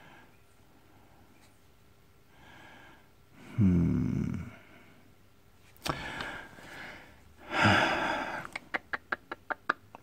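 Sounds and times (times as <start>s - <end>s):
man exhaling: 5.8s - 8.5s.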